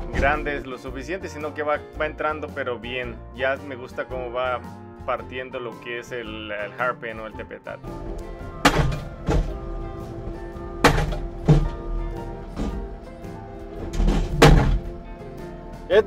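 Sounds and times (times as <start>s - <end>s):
guitar music: 7.8s - 16.0s
post driver striking metal post: 8.1s - 15.0s.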